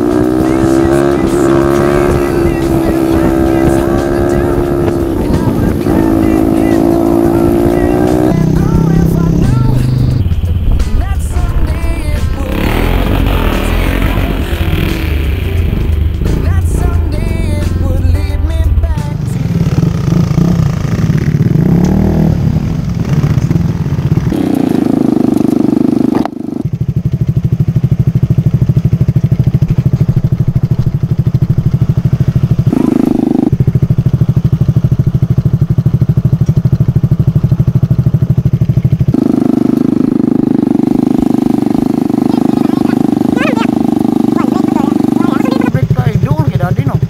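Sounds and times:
motorcycle engine idling: 0.0s - 47.0s.

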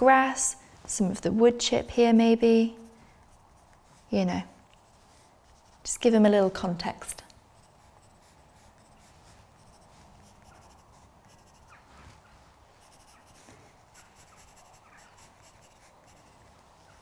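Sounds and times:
pencil scratching on paper: 2.6s - 4.2s, 4.8s - 6.0s, 7.5s - 12.0s, 12.7s - 17.0s.

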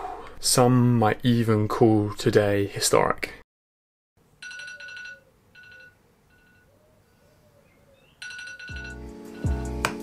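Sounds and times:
phone alarm chiming: 4.4s - 6.7s, 8.2s - 9.7s.

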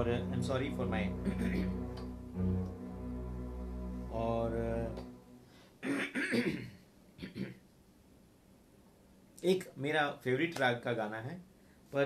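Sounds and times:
held keyboard note: 0.0s - 6.0s
man clearing throat: 5.8s - 7.6s.

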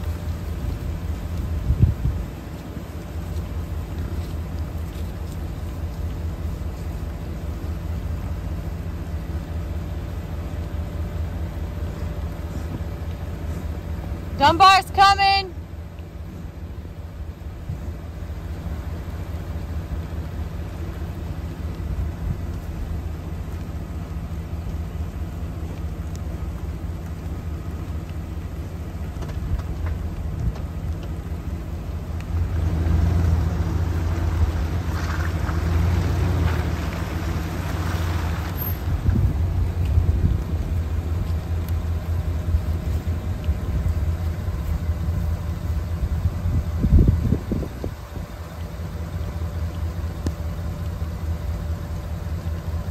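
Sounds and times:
utility vehicle engine running: 0.0s - 52.9s.

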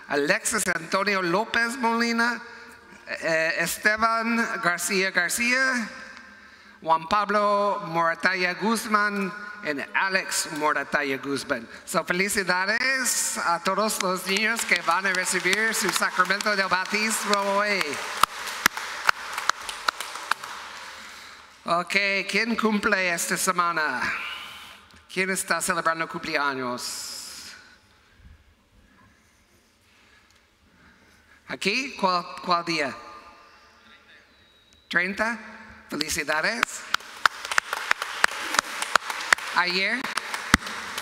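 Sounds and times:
congregation applauding: 13.6s - 21.6s, 36.0s - 41.0s
sharp single claps: 13.9s - 21.0s, 36.0s - 41.0s.

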